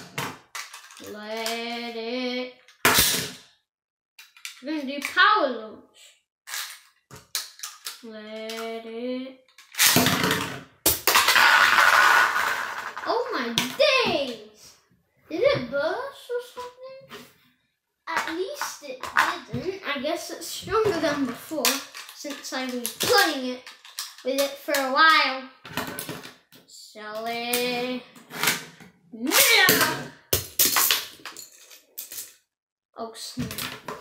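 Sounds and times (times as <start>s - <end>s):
boy exclaiming and vocalising: 1.0s - 2.6s, 8.0s - 9.4s, 13.0s - 17.2s, 18.1s - 23.6s, 26.7s - 28.2s, 29.2s - 30.1s
spinning tops clattering on wood: 10.9s - 13.0s, 21.7s - 24.5s.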